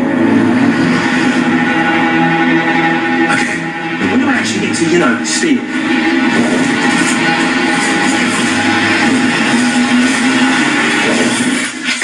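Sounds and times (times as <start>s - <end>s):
sustained low tones: 0.0s - 11.8s
rushing noise: 0.0s - 12.0s.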